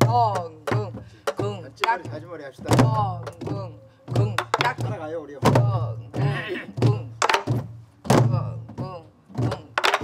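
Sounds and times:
deep drum booms: 0.0s - 9.8s
person singing: 5.6s - 7.2s.

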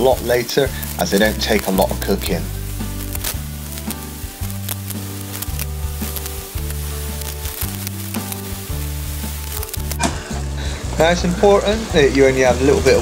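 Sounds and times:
background music with bass line: 0.0s - 13.0s
food sizzling in a pot: 0.0s - 13.0s.

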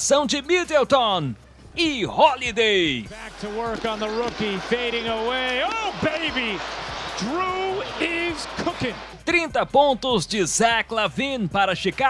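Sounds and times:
man commentating excitedly: 1.8s - 12.0s
arena crowd noise: 3.1s - 9.3s.

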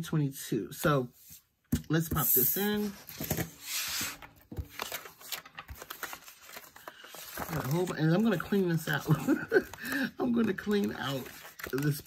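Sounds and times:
paper rustling: 2.6s - 12.0s.

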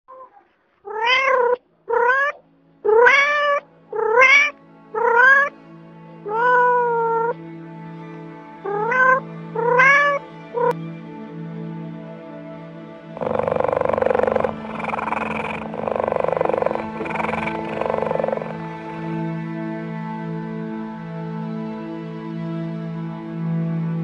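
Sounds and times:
cat meowing: 0.1s - 5.5s, 6.3s - 7.4s, 8.6s - 10.8s, 13.2s - 18.7s.

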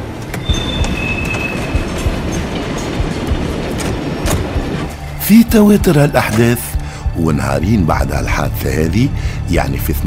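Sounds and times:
train rumbling and clattering: 0.0s - 10.0s
high squeal: 0.3s - 2.4s
narration voice: 5.2s - 10.0s.

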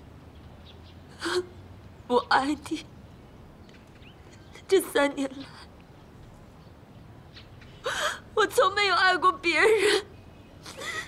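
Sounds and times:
woman crying and sobbing: 7.8s - 11.0s.

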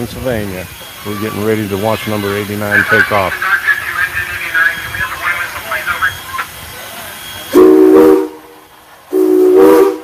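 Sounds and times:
people talking indistinctly: 0.2s - 7.2s.

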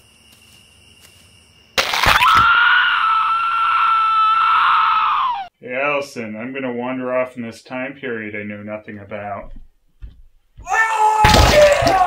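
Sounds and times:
high-pitched scream: 2.0s - 5.5s.

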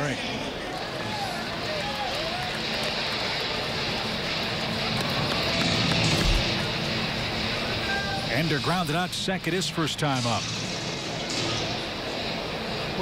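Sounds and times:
crowd murmur: 0.0s - 8.3s.

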